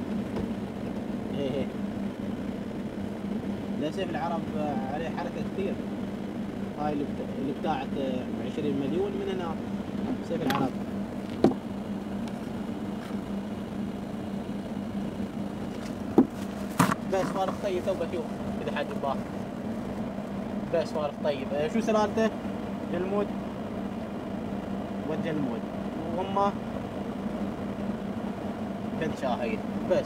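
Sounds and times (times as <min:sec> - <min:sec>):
vehicle engine idling: 0:00.0 - 0:30.0.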